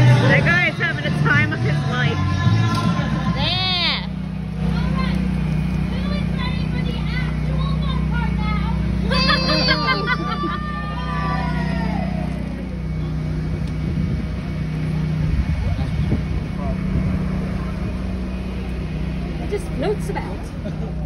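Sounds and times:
engine running with low drone: 0.0s - 21.0s
voices calling out: 0.0s - 21.0s.

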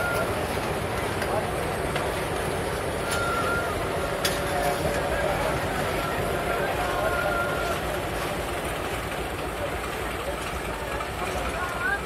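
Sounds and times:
faint voices: 0.0s - 12.0s
train rumbling on rails: 0.0s - 12.0s.

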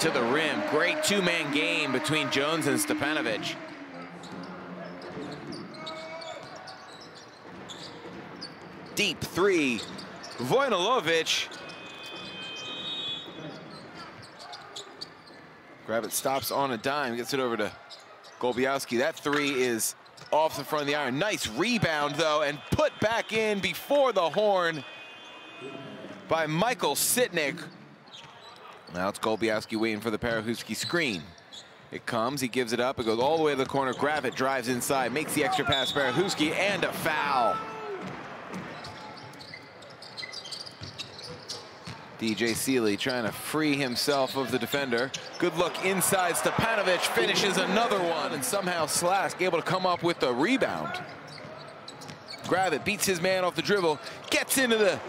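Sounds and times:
basketball court sounds: 0.0s - 16.7s, 33.0s - 55.0s
crowd noise: 0.0s - 55.0s
sneakers squeaking on floor: 3.5s - 16.6s, 17.6s - 23.7s, 27.5s - 30.0s, 30.8s - 31.9s, 33.0s - 55.0s.

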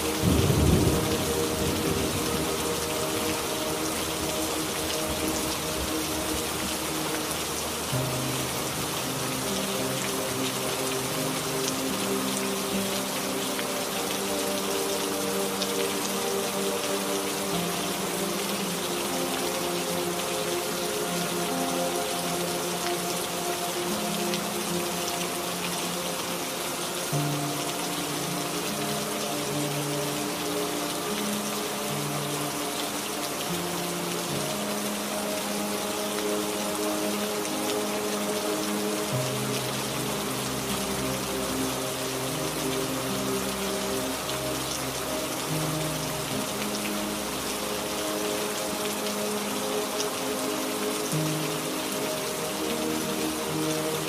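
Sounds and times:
soft ambient music: 0.0s - 54.0s
steady rain falling: 0.0s - 54.0s.

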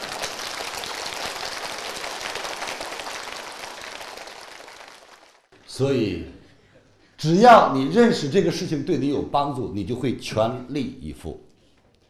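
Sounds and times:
audience applauding: 0.0s - 5.5s.

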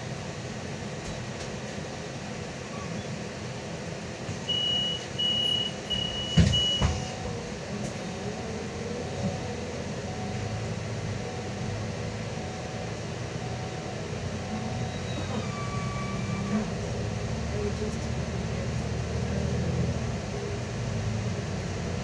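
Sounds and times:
bus engine hum: 0.0s - 22.0s
short high beeps: 4.5s - 6.9s.

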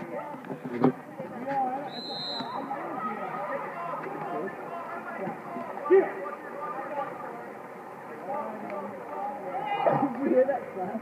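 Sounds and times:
chatter of spectators: 0.0s - 11.0s
referee's whistle blast: 1.9s - 2.7s
loud shout: 9.2s - 10.2s.

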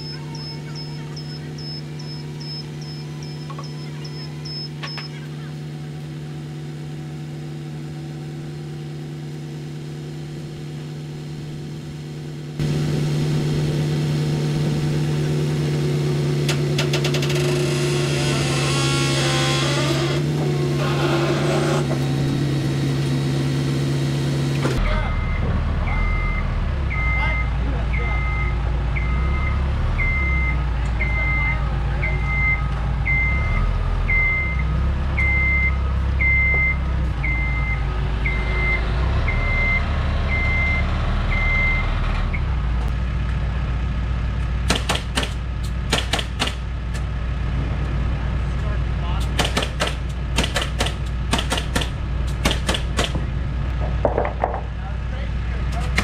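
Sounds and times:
motion alarm beeping: 0.0s - 5.2s, 25.0s - 41.9s
low engine rumble: 0.0s - 56.0s.

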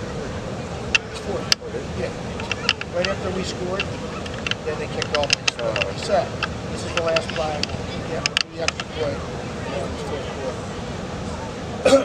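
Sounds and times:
distant voices calling out: 0.0s - 12.0s
sharp clicks: 3.8s - 8.9s.

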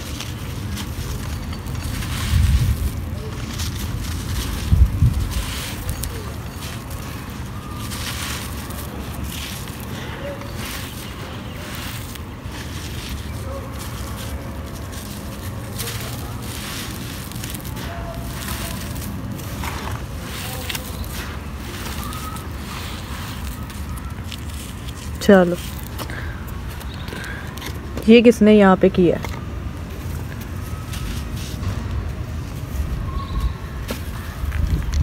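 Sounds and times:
crumbling dirt crackling: 0.0s - 28.1s
wind rumble on microphone: 1.0s - 6.4s, 31.6s - 35.0s.

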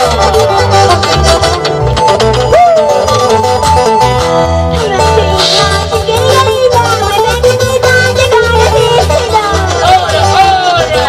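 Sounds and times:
bass line: 0.0s - 11.0s
drums: 0.0s - 11.0s
guitar melody: 0.0s - 11.0s
live band playing: 0.0s - 11.0s.

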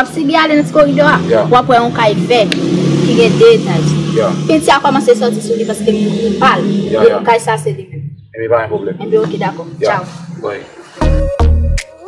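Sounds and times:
woman speaking: 0.0s - 8.1s, 9.0s - 10.2s
steady low hum: 0.0s - 10.9s.

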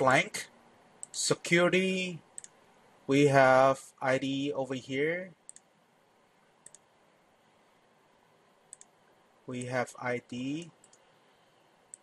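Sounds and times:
computer mouse double-click: 6.6s - 6.8s.

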